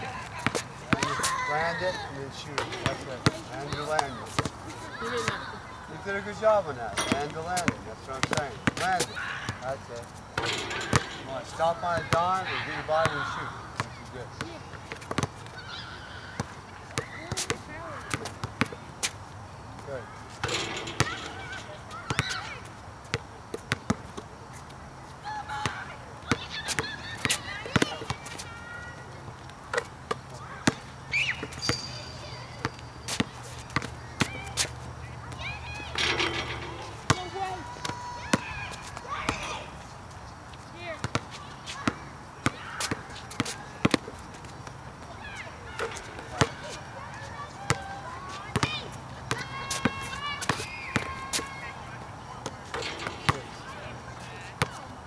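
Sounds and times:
people shouting: 0.0s - 2.2s, 2.8s - 5.9s, 9.0s - 9.6s, 20.0s - 22.7s, 35.2s - 39.8s, 41.4s - 43.8s, 45.1s - 52.0s
basketball dribbling on asphalt: 0.4s - 2.0s, 7.1s - 9.6s, 11.8s - 12.2s, 13.0s - 15.4s, 22.1s - 24.2s, 29.8s - 35.8s, 40.8s - 46.7s, 47.3s - 51.6s
thud of basketball shots: 10.4s - 12.2s, 20.4s - 22.4s, 35.9s - 39.5s, 52.7s - 53.8s.

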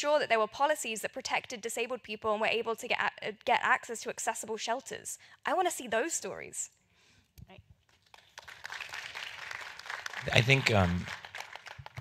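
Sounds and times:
audience applauding: 8.0s - 12.0s.

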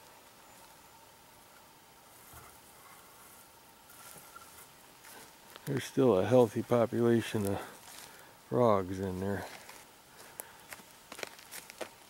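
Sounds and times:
faint outdoor ambience: 0.0s - 12.0s.

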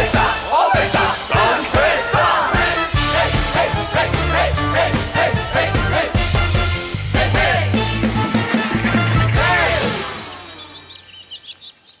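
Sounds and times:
closing music: 0.0s - 11.1s
high twittering chirps: 10.0s - 12.0s.

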